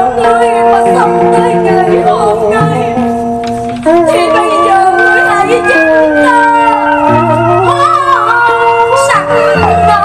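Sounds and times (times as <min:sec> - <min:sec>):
person singing opera: 0:00.0 - 0:03.0, 0:03.8 - 0:10.0
instrumental accompaniment: 0:00.0 - 0:10.0.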